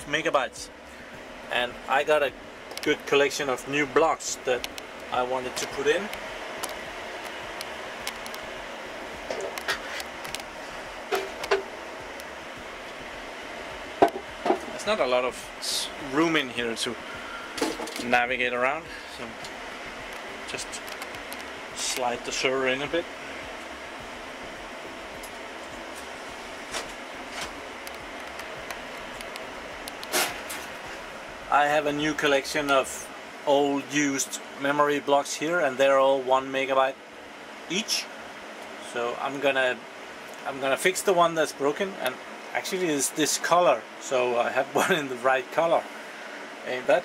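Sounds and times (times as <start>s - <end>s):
server cooling fans whirring: 0.0s - 47.0s.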